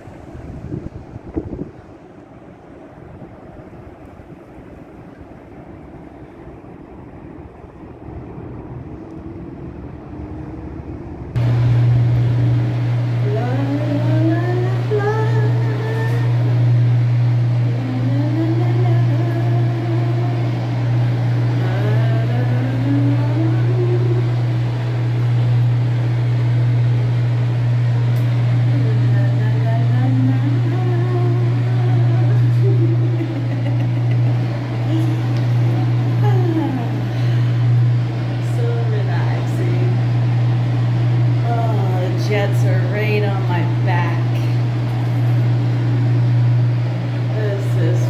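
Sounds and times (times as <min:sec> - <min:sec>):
loud steady low hum: 0:00.0 - 0:48.0.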